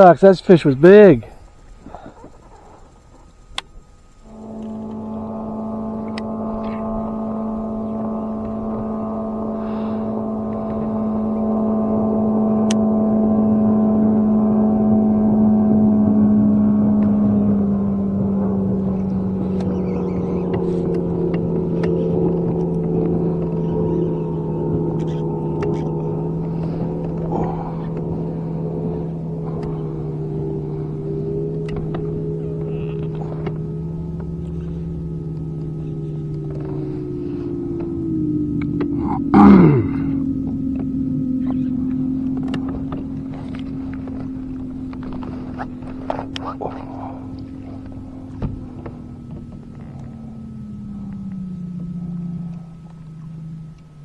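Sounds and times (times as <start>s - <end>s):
boat motor humming: 0.0s - 54.0s.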